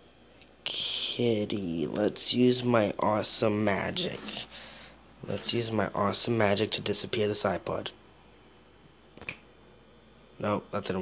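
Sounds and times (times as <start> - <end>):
faint steady hum: 0.0 - 11.0
finger snap: 9.2 - 9.5.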